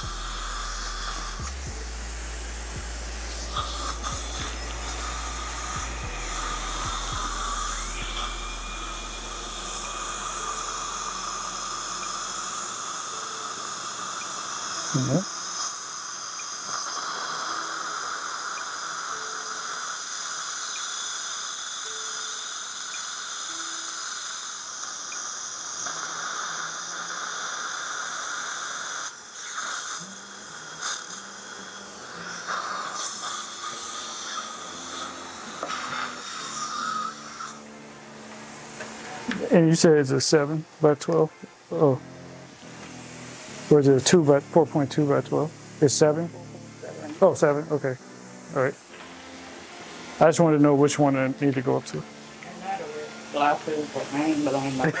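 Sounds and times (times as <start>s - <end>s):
dental suction hissing: 0.0s - 55.0s.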